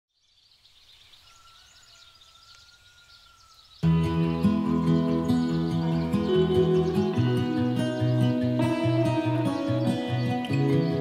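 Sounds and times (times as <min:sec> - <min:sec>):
birds chirping: 0:00.1 - 0:11.0.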